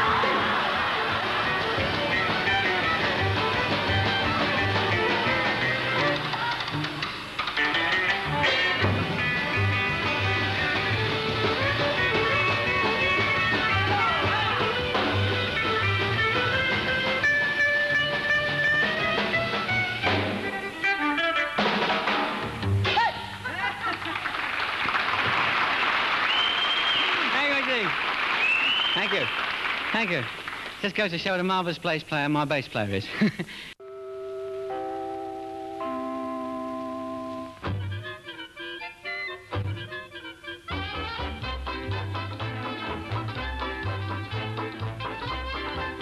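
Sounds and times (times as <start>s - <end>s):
audience applauding: 0.0s - 3.9s, 23.8s - 31.0s
double bass notes: 0.0s - 21.7s, 22.4s - 23.4s, 33.8s - 46.0s
skiffle band playing: 0.0s - 23.7s, 24.7s - 31.2s, 33.8s - 46.0s.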